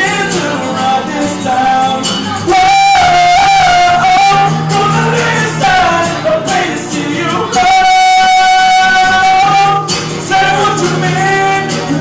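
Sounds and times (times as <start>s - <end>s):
man singing: 0.0s - 12.0s
strummed acoustic guitar: 0.0s - 12.0s.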